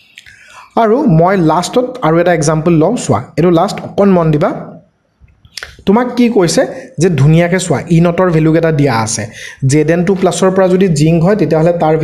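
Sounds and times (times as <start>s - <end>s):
person speaking: 0.1s - 12.0s.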